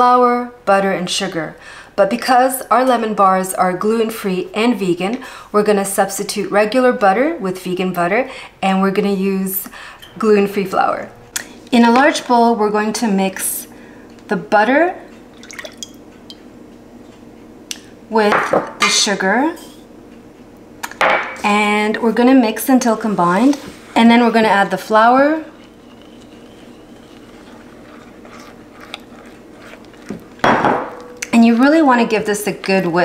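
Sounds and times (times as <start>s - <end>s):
spatula scraping glass bowl: 24.2s - 30.4s.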